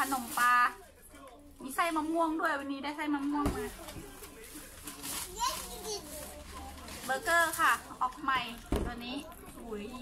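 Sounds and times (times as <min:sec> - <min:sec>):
quiet indistinct voices: 0:00.0 - 0:10.0.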